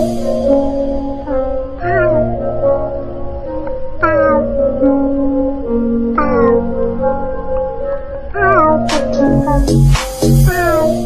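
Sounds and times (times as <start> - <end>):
background music of held notes: 0.0 - 11.0.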